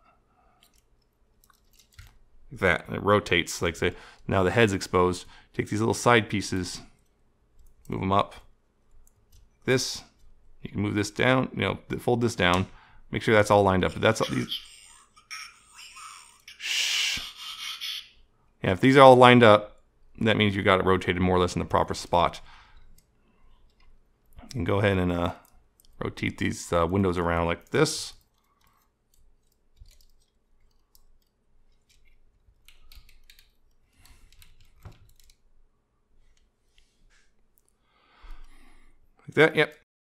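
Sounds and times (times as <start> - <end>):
plastic toy parts clicking: 27.6 - 35.4.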